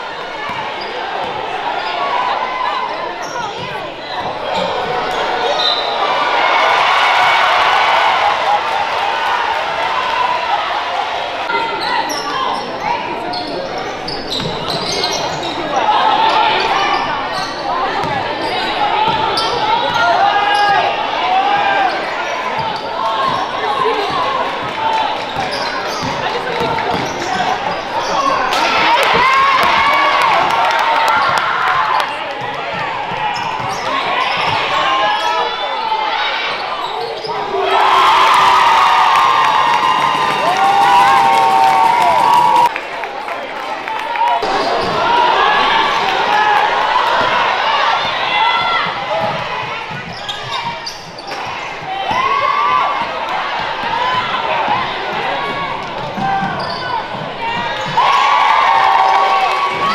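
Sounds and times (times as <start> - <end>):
sneakers squeaking: 0.0 - 6.4, 11.5 - 37.9, 44.4 - 59.9
voices of players and crowd: 0.0 - 59.9.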